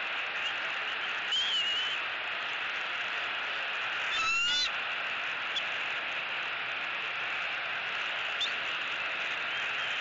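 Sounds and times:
steady background hiss: 0:00.0 - 0:10.0
bird call: 0:00.4 - 0:02.0, 0:04.1 - 0:04.7, 0:08.3 - 0:08.8.

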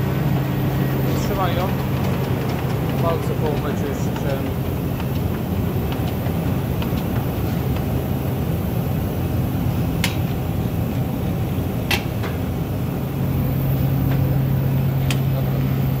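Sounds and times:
printing press running: 0:00.0 - 0:16.0.

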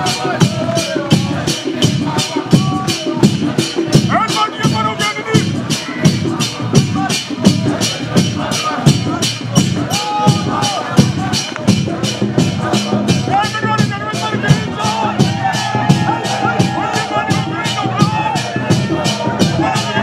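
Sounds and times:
crowd singing and calling out: 0:00.0 - 0:20.0
drums: 0:00.0 - 0:20.0
jingling hand percussion: 0:00.0 - 0:20.0.

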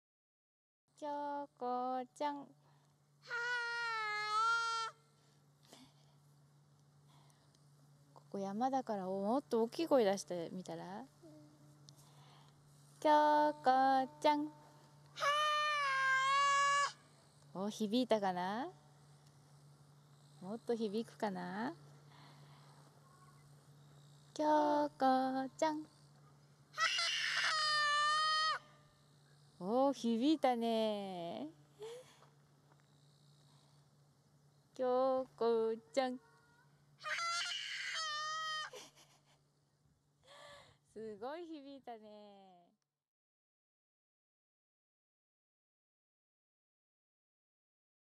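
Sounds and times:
child shouting long call: 0:03.2 - 0:05.0, 0:15.2 - 0:17.0, 0:26.8 - 0:28.8, 0:36.2 - 0:38.7
child calling out high note: 0:15.2 - 0:17.0.

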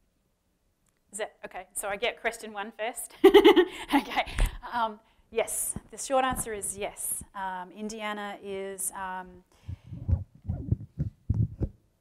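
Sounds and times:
muffled thumps on a microphone: 0:05.7 - 0:07.3, 0:09.6 - 0:11.8.

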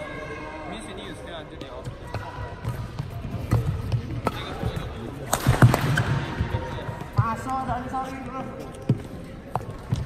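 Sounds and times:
voices talking in a hall: 0:00.0 - 0:10.0.

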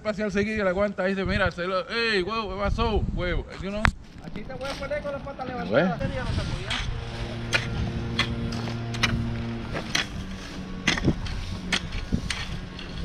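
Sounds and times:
steady motor hum: 0:05.4 - 0:13.0
hoe scraping through gravel: 0:05.7 - 0:13.0.

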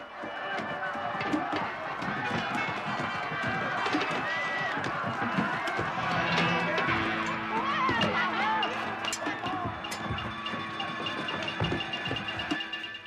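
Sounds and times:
crowd running footsteps: 0:00.0 - 0:13.0
people shouting and crying: 0:00.0 - 0:13.0.

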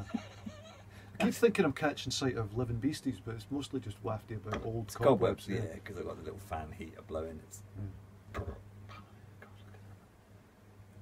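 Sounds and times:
electric fan heater humming: 0:00.0 - 0:11.0.

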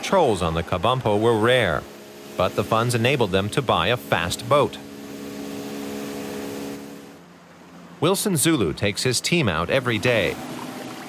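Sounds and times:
motorboat engine running: 0:00.0 - 0:11.0
rushing water: 0:00.0 - 0:11.0
wind: 0:00.0 - 0:11.0.

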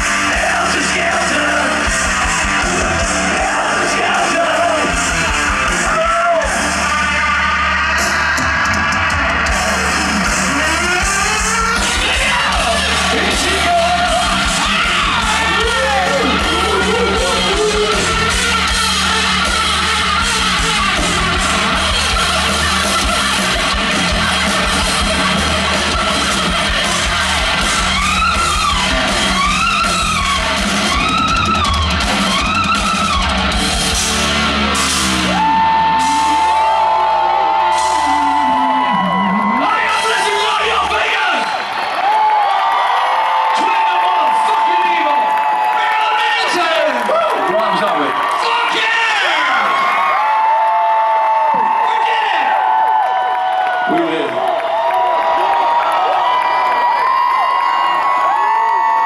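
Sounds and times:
bass guitar: 0:00.0 - 0:41.2
distorted guitar: 0:00.0 - 0:41.6
yelled vocals: 0:00.0 - 0:41.7
drums: 0:00.0 - 0:59.0.

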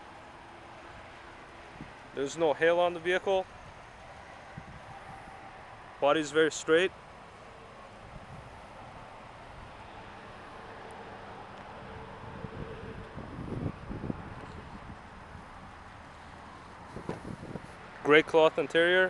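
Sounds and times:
wind on microphone: 0:04.5 - 0:05.3, 0:12.0 - 0:15.6, 0:16.9 - 0:17.8
uneven rumbling and rustling: 0:12.3 - 0:18.0.

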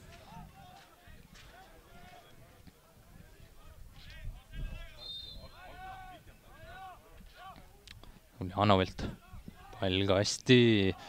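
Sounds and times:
players shouting: 0:00.0 - 0:07.8, 0:09.1 - 0:11.0
high referee's whistle blast: 0:05.0 - 0:05.6.

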